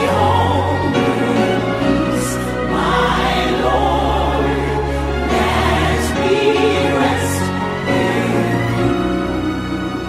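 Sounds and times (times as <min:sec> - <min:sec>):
choir singing slow sacred song: 0:00.0 - 0:10.0.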